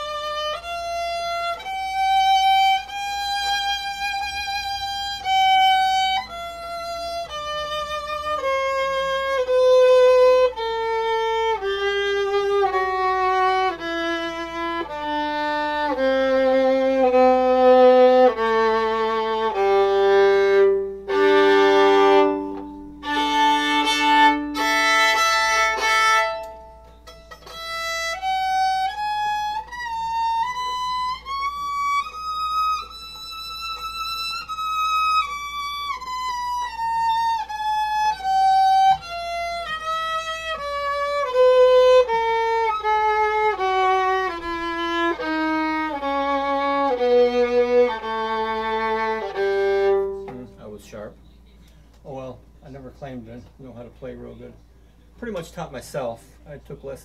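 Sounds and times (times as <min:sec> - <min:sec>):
solo violin bowed melody: 0:00.0 - 0:51.6.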